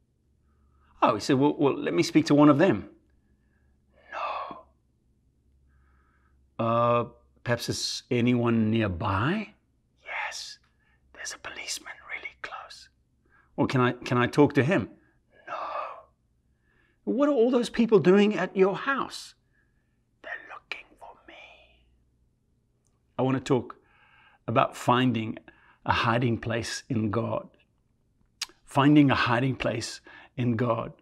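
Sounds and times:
man whispering: 3.9s - 4.8s, 6.5s - 19.5s, 20.2s - 22.0s, 23.0s - 27.7s, 28.4s - 31.0s
man breathing in: 5.6s - 6.5s, 23.8s - 24.4s.

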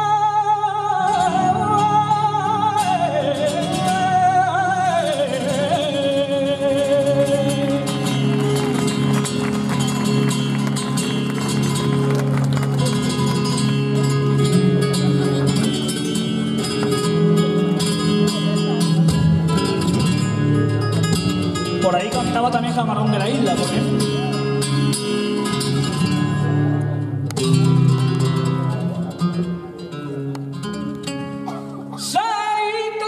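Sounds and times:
man singing flamenco: 0.0s - 9.2s, 12.9s - 26.2s, 31.1s - 33.0s
flamenco guitar: 0.0s - 33.0s.

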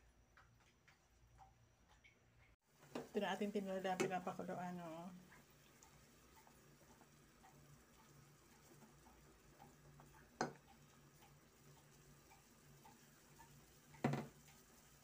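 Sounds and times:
soup simmering with ticks and pops: 0.2s - 15.0s.

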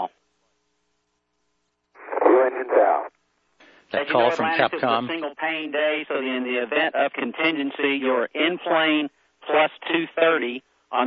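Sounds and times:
tinny radio voice transmission: 2.0s - 3.1s, 3.9s - 11.0s
man speaking: 3.9s - 11.0s.

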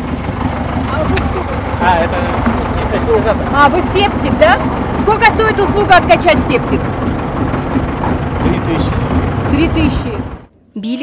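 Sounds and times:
truck engine idling: 0.0s - 10.7s.

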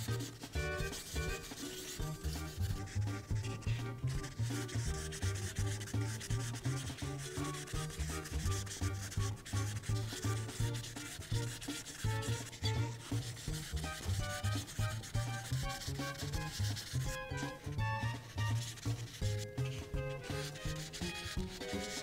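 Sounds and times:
background music: 0.0s - 22.0s
marker rubbing on paper: 0.0s - 22.0s.

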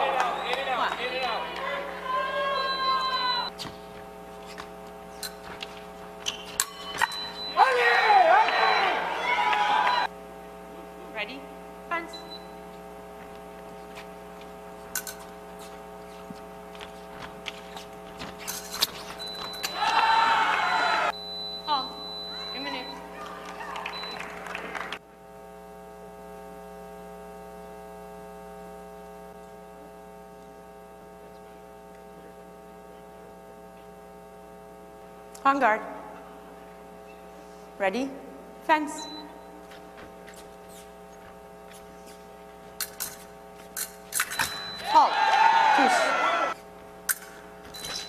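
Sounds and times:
electrical mains hum: 0.0s - 48.0s.

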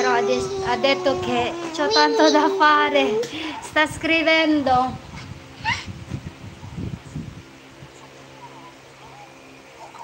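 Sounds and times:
toddler squealing: 0.0s - 3.2s.

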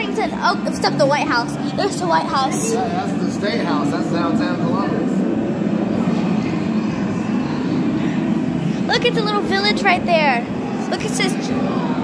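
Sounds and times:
faint murmur of voices: 0.0s - 12.0s
low indoor rumble: 0.0s - 12.0s.

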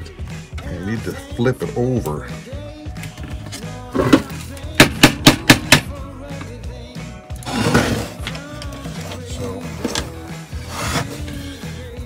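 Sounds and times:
music: 0.0s - 12.0s
sharp knocks on metal plate: 4.8s - 5.9s.

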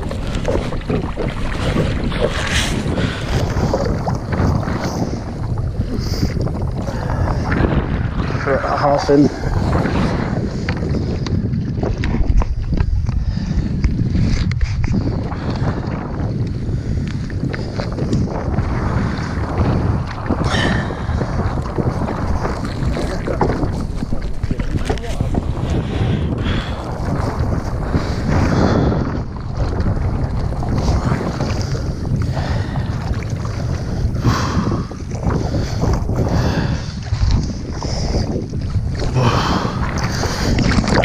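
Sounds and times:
water slapping and splashing: 0.0s - 41.0s
wind buffeting microphone: 0.0s - 41.0s.

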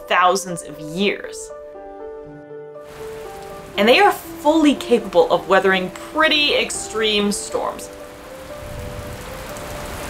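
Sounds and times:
rain falling on the sea: 2.8s - 10.0s.

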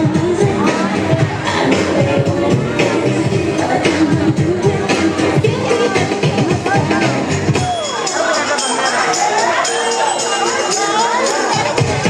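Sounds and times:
deep bass beat: 0.0s - 8.2s
crowd voices: 0.0s - 12.0s
soul song over sound system: 0.0s - 12.0s.

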